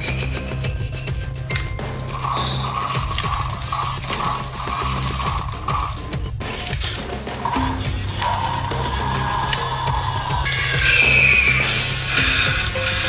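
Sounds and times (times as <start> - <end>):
background music: 0.0 - 13.0
toy gears clicking and ratcheting: 0.0 - 13.0.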